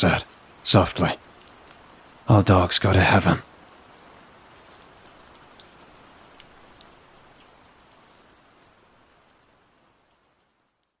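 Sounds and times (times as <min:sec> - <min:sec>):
steady rain falling: 0:00.0 - 0:11.0.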